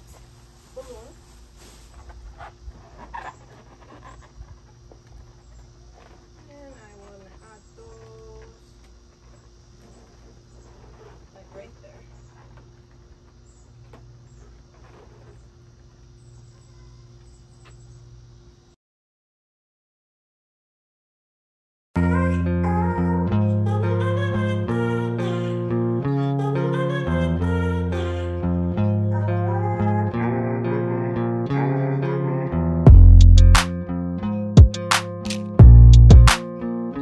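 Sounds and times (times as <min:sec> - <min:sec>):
balloons squeaking and rubbing: 0:00.7 - 0:04.6.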